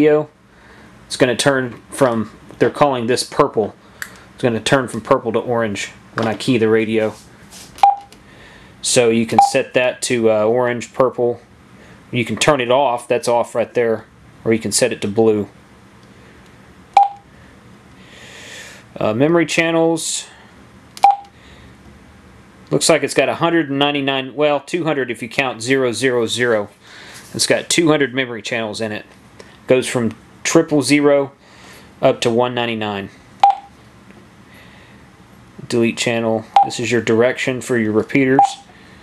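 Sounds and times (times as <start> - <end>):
short sharp key beep: 7.8 - 8.1, 17.0 - 17.2, 21.0 - 21.3, 33.4 - 33.7, 38.4 - 38.6.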